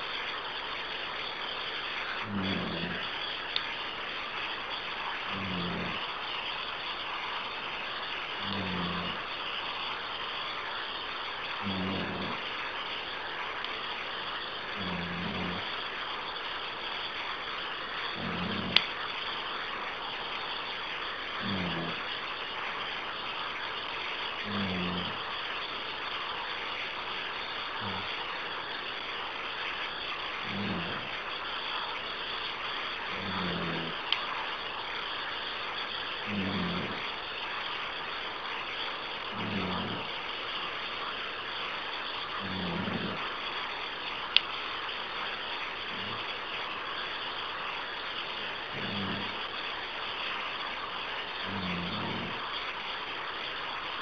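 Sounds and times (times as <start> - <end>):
phone line hiss: 2.0 - 17.4, 18.0 - 22.3, 23.7 - 29.0, 29.8 - 34.6, 35.2 - 40.2, 42.0 - 43.4, 47.8 - 49.6, 50.8 - 52.5.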